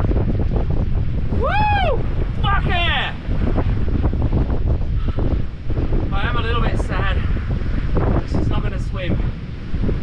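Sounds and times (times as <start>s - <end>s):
breaking surf: 0.0s - 10.0s
wind buffeting microphone: 0.0s - 10.0s.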